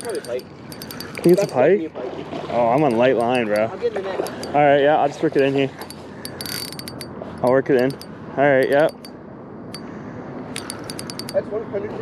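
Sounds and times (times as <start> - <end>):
fishing reel cranking: 0.0 - 1.6, 2.8 - 4.6, 5.8 - 9.1, 10.6 - 11.4
light metallic clicks: 0.0 - 1.6, 5.8 - 9.1, 10.6 - 11.4.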